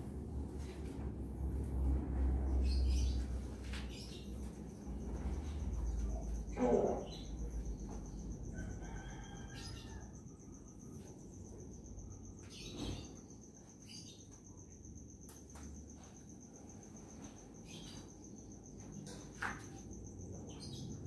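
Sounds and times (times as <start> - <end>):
low background hum: 0.0 - 21.0
high-pitched insect trill: 2.4 - 21.0.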